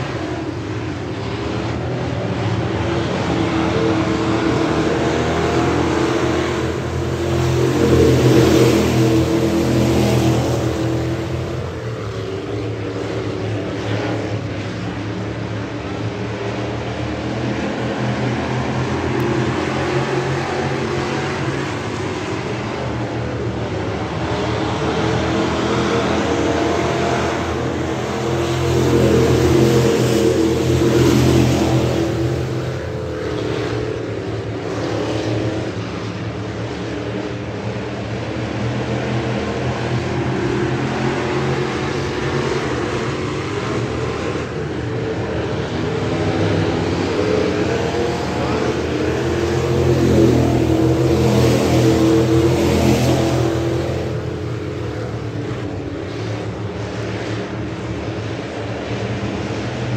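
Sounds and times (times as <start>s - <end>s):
race car engines at full throttle: 0.0s - 59.9s.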